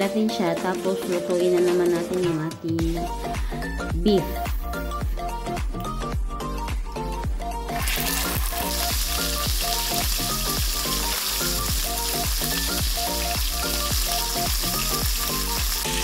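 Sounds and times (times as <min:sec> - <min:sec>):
background music with steady beat: 0:00.0 - 0:16.0
burger patty sizzling in oil: 0:07.7 - 0:16.0.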